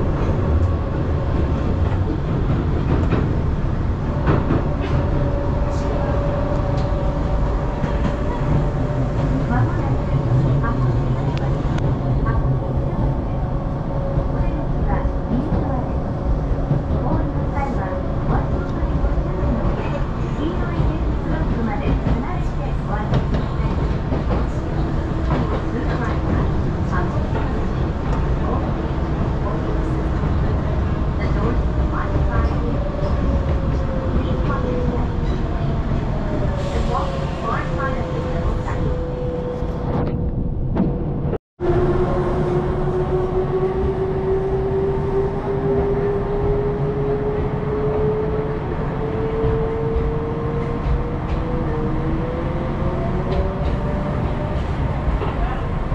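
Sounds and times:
train rumbling: 0.0 - 55.9.

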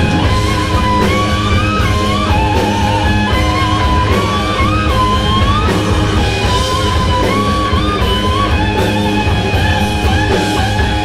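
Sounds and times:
electric guitar lead note bending: 0.0 - 11.0
rock band playing loud: 0.0 - 11.0.

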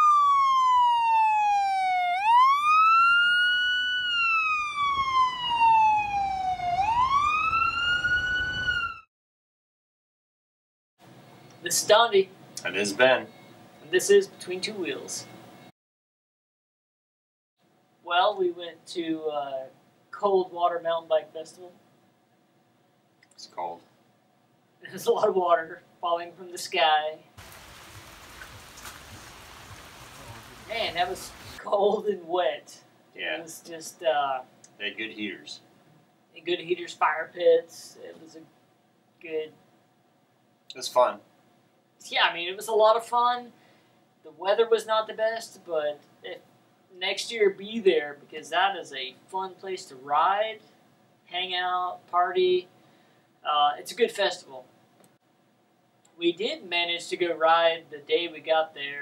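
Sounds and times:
siren wailing: 0.0 - 9.1
rain on tent canopies: 27.4 - 31.6.

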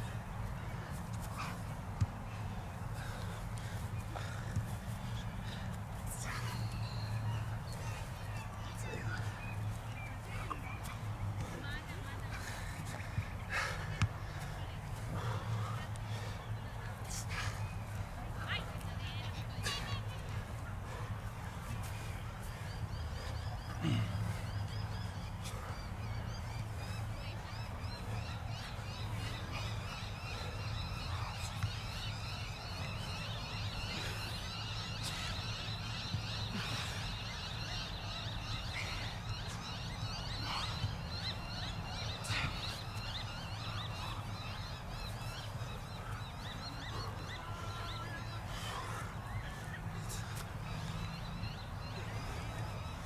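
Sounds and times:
birds chattering and calling: 0.0 - 53.0.

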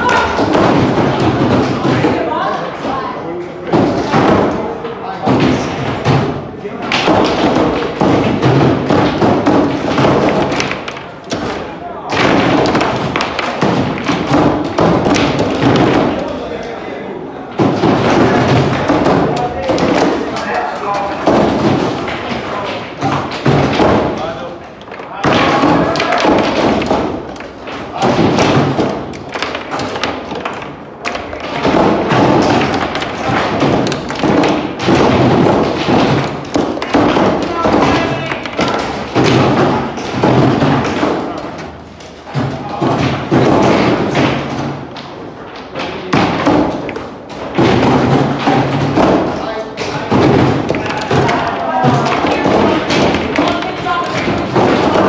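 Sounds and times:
foosball figures striking ball: 0.0 - 55.0.

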